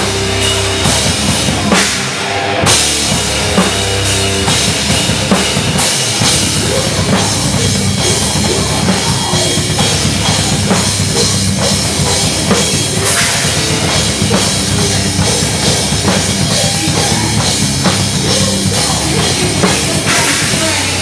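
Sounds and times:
distorted electric guitar: 0.0 - 21.0
heavy bass drum: 0.0 - 21.0
metal band playing live: 0.0 - 21.0.

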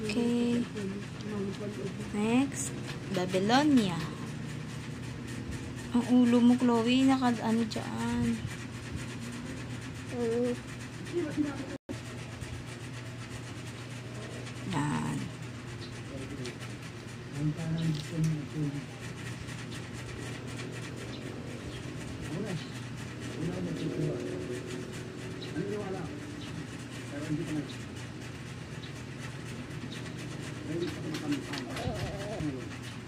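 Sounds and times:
low hum of room noise: 0.0 - 33.0.

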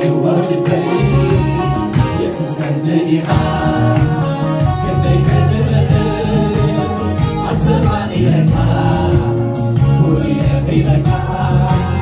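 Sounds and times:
congregation singing: 0.0 - 12.0
man leading song over pa: 0.0 - 12.0
band with drums: 1.0 - 2.3, 3.3 - 12.0.

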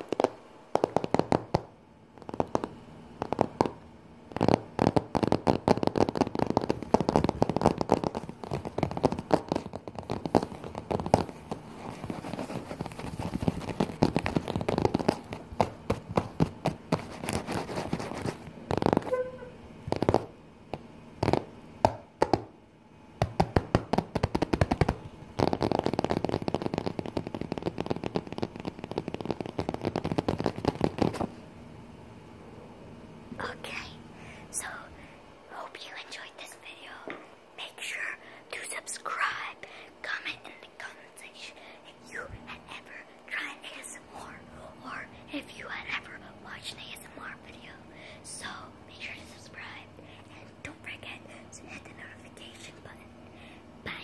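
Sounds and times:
fingertip tapping: 0.0 - 22.5, 23.2 - 31.3
soft whispering: 33.3 - 54.0.

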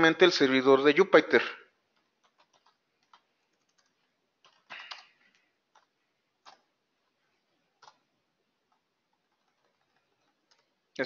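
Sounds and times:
computer keyboard keystrokes: 2.0 - 6.7, 7.8 - 8.0, 8.7 - 10.8.

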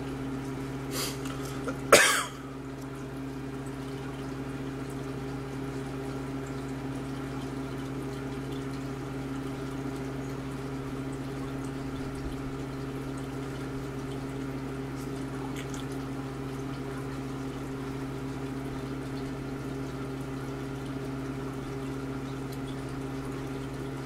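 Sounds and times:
aquarium pump humming: 0.0 - 24.0
water bubbling and trickling: 0.0 - 24.0
person coughing: 0.9 - 2.5.

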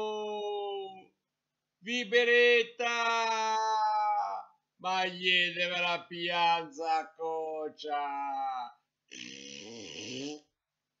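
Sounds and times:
person making rasping hiss: 9.1 - 10.5.

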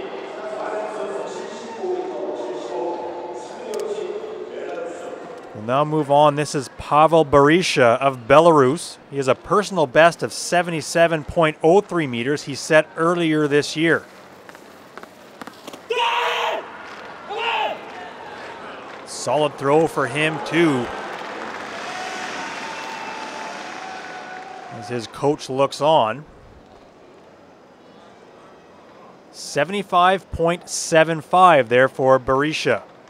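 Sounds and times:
faint stadium background: 0.0 - 33.0
man yelling: 15.9 - 16.6, 17.3 - 17.8
short shout: 15.9 - 16.7, 17.3 - 18.0
men shouting and cheering: 15.9 - 26.0.

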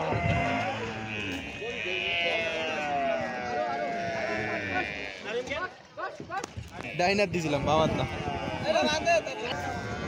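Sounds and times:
cattle mooing and bawling: 0.0 - 5.4, 7.5 - 10.0.

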